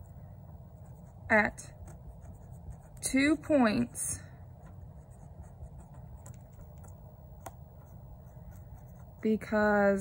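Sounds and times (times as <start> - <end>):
low room hum: 0.0 - 10.0
pen scratching on paper: 0.6 - 3.3, 4.6 - 9.4.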